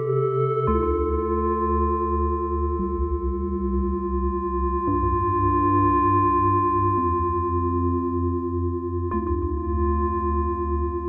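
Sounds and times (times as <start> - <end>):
pulsing low synth bass: 0.0 - 11.0
synthesizer pad chords: 0.0 - 11.0.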